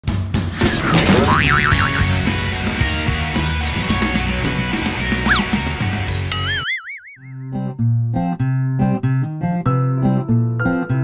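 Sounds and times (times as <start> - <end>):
wobbling cartoon sound effect: 1.3 - 2.1, 5.3 - 5.5, 6.3 - 7.4.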